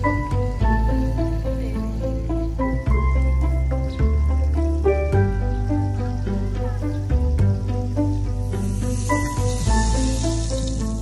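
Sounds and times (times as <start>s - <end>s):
background music: 0.0s - 11.0s
batter sizzling in hot oil: 0.0s - 11.0s.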